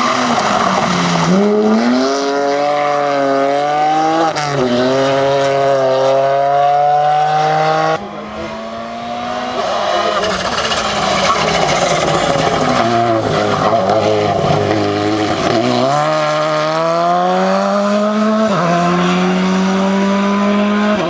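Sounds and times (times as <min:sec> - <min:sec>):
rally car engine accelerating: 0:00.0 - 0:21.0
rally car engine approaching: 0:00.0 - 0:21.0.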